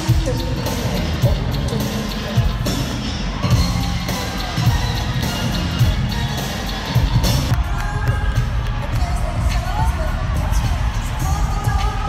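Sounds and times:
crowd cheering and screaming: 0.0 - 12.0
heavy bass beat: 0.0 - 12.0
loud pop music over sound system: 0.0 - 12.0.

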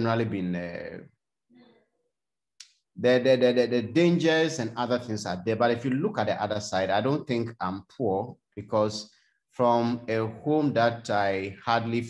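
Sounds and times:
man speaking: 0.0 - 1.2, 3.0 - 12.0.

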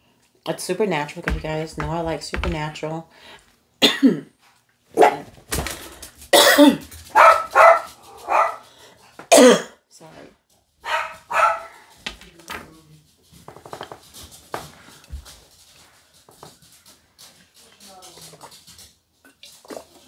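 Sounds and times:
woman coughing: 3.8 - 4.3, 6.4 - 6.9, 9.3 - 9.8.

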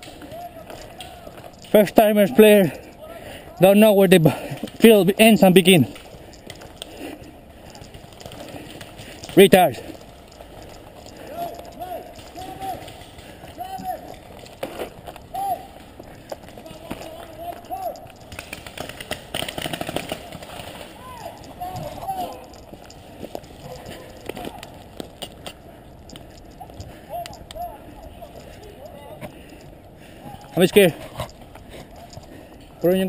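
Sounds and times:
sharp clicks: 0.0 - 3.0, 3.6 - 33.0
distant shouted calls: 0.0 - 4.1, 4.8 - 32.0
rattling run of clicks: 3.6 - 29.7.

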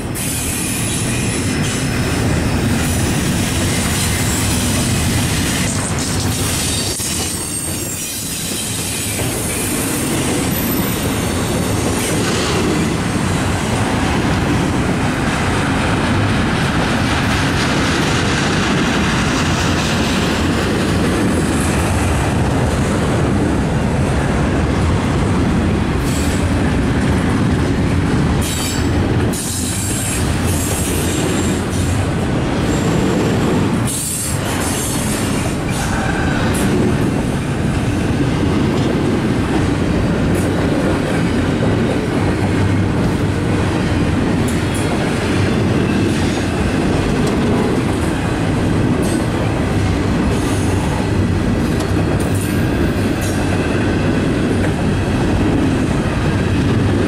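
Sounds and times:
train wheel squeals: 0.0 - 2.2, 2.8 - 12.7, 26.0 - 26.5, 28.4 - 32.0, 32.6 - 36.8
freight train wheels rumbling: 0.0 - 57.0.

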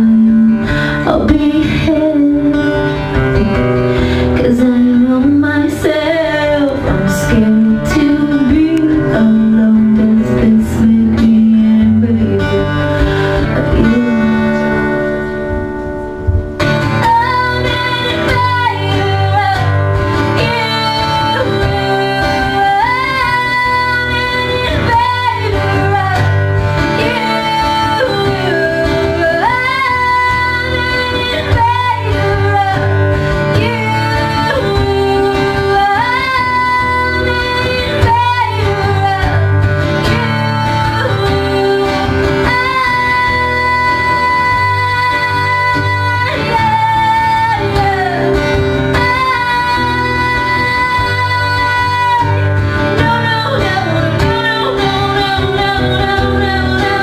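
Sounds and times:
acoustic guitar strumming: 0.0 - 57.0
woman singing: 0.0 - 57.0.

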